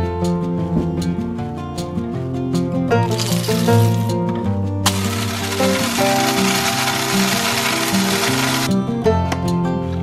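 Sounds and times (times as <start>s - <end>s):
instrumental background music: 0.0s - 10.0s
electric coffee grinder running: 4.9s - 8.7s.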